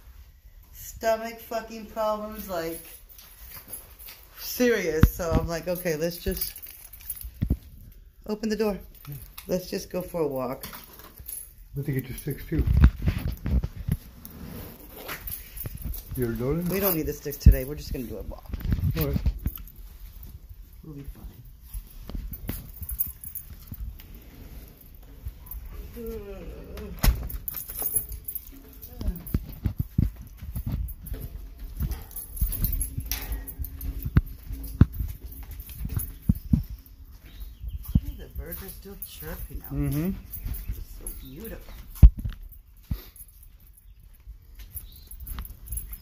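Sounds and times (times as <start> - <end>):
handling noise: 10.5 - 46.0
footsteps on hard steps: 27.0 - 43.7.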